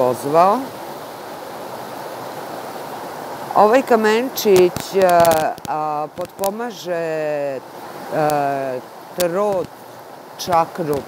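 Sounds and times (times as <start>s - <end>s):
river water rushing: 0.0s - 11.0s.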